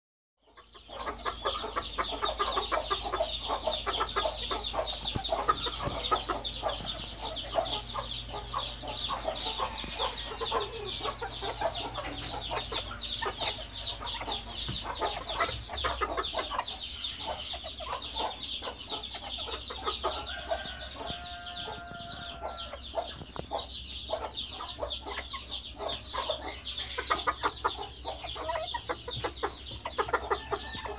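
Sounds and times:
bantam chickens clucking: 0.4 - 30.9
low steady hum: 0.5 - 30.9.

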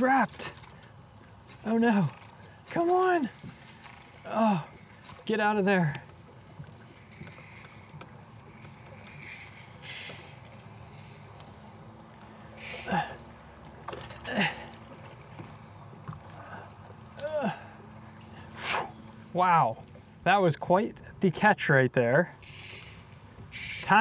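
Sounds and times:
water around a boat: 0.0 - 24.0
wind: 0.0 - 24.0
man grunting: 17.2 - 17.7.

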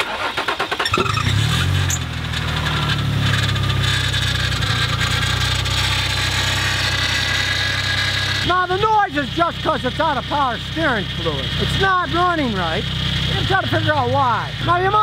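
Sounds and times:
car engine starting and idling: 0.0 - 15.0.

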